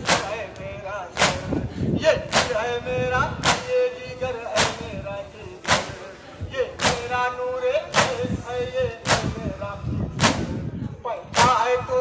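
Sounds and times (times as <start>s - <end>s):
crowd beating chests: 0.0s - 1.6s, 2.3s - 2.8s, 3.4s - 3.8s, 5.6s - 6.1s, 6.8s - 7.2s, 7.9s - 8.4s
men chanting: 0.0s - 9.9s, 11.2s - 12.0s.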